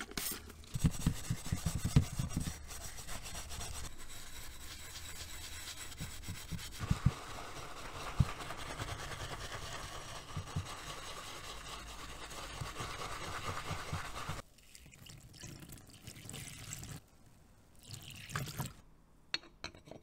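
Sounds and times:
bristle brush scrubbing in water: 0.8s - 14.4s.

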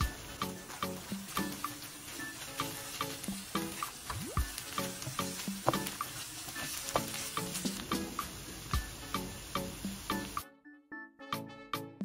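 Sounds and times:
meat and onions sizzling in pan: 0.0s - 10.4s
light background music: 0.0s - 12.0s.

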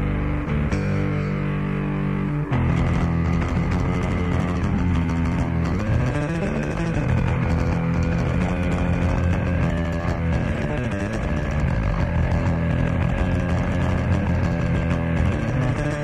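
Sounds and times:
electric bass guitar solo: 0.0s - 16.0s.

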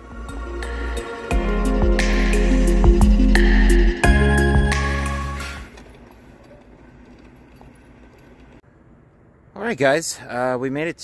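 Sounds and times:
buggy wheel noise: 5.5s - 8.6s.

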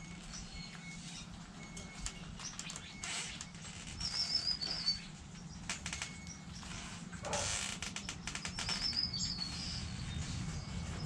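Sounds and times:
small bird chirping: 8.1s - 10.8s.

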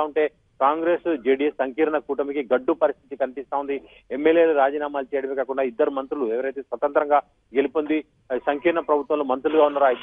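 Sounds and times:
person speaking over telephone: 7.6s - 10.0s.

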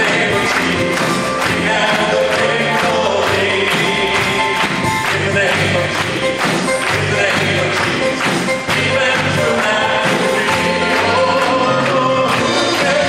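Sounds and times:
drum kit steady beat: 0.0s - 13.0s
live gospel band playing: 0.0s - 13.0s
voices singing: 0.0s - 13.0s.

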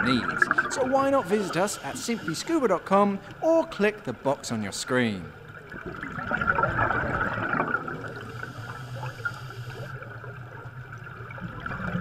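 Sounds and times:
underwater air bubbles gurgling: 0.0s - 3.4s, 5.3s - 12.0s.

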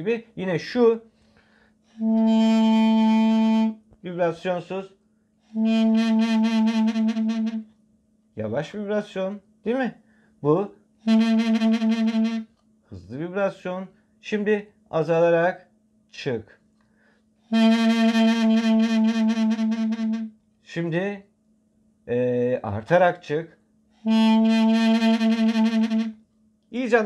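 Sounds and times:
double-reed pipe long note: 2.0s - 3.8s, 5.6s - 7.7s, 11.1s - 12.5s, 17.5s - 20.3s, 24.0s - 26.2s
double-reed pipe low note with vibrato: 2.0s - 3.8s, 24.1s - 26.2s.

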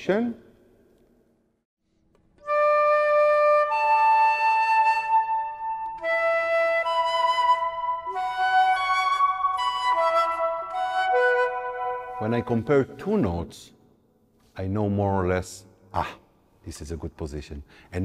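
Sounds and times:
flute sustained notes: 2.4s - 13.2s.

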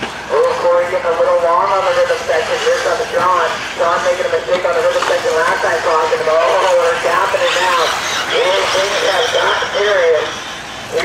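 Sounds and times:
race commentator speaking: 0.2s - 11.0s
electric rc buggies running: 0.3s - 11.0s.

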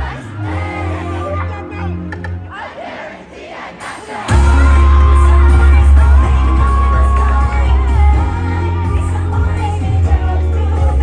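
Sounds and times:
crowd shouting and cheering: 0.0s - 11.0s
live pop band with heavy bass: 3.8s - 11.0s.

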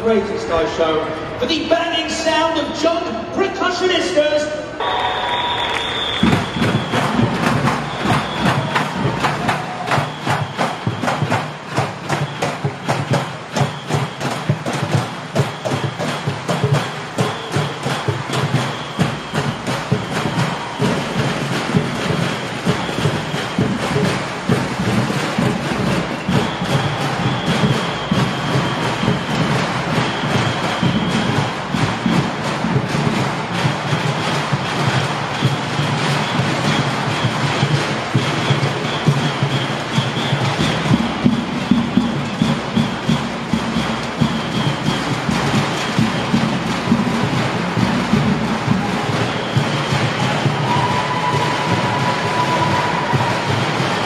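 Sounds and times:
percussion on drums and junk objects: 4.8s - 54.0s.

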